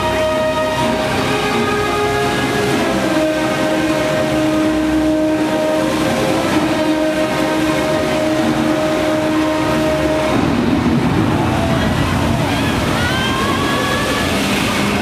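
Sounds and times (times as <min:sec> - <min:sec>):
ride drone of low tones: 0:00.0 - 0:12.8
ride rumbling: 0:00.0 - 0:15.0.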